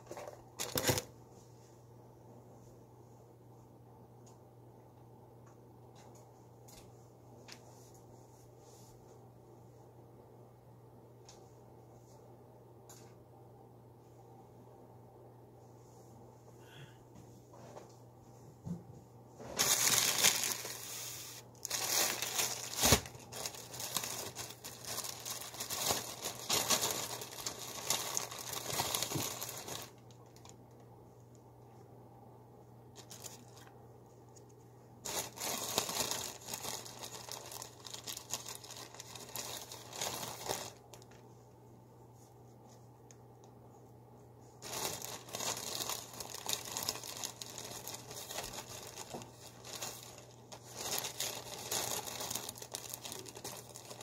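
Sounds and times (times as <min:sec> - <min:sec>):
plastic bags crinkling: 0:00.0 - 0:01.1, 0:19.6 - 0:30.6, 0:33.0 - 0:33.7, 0:35.0 - 0:41.2, 0:44.6 - 0:54.0.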